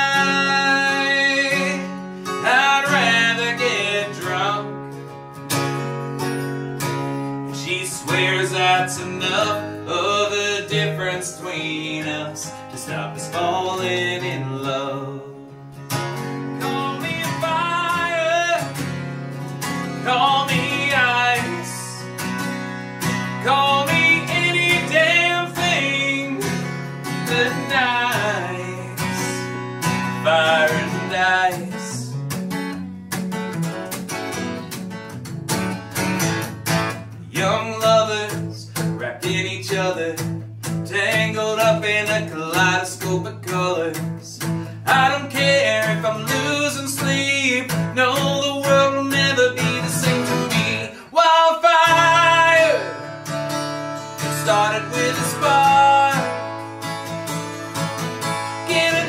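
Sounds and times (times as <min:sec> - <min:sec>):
man singing: 0:00.0 - 0:04.9, 0:07.5 - 0:15.7, 0:16.4 - 0:19.0, 0:19.6 - 0:22.4, 0:23.1 - 0:32.2, 0:37.0 - 0:56.8, 0:58.2 - 0:59.0
strummed acoustic guitar: 0:00.0 - 0:59.0.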